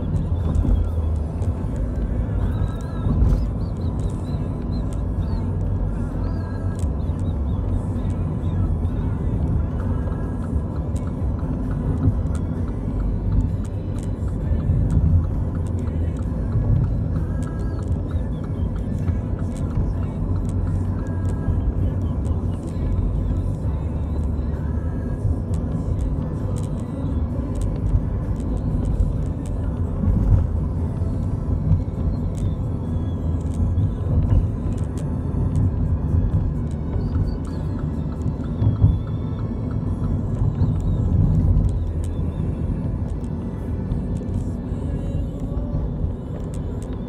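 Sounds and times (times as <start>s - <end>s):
car road noise inside cabin: 0.0s - 47.0s.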